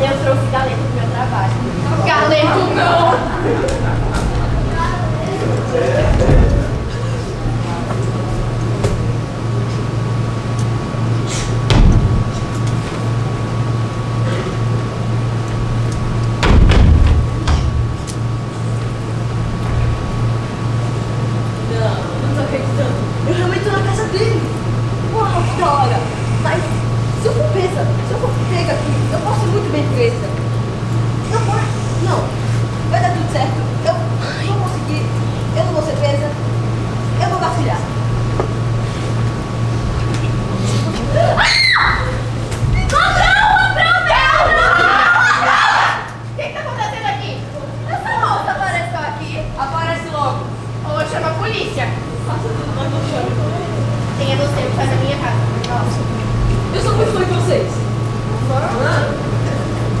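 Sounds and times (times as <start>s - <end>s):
steady low hum: 0.0s - 60.0s
knocks and thuds: 6.0s - 7.0s, 11.6s - 12.5s, 16.4s - 18.1s.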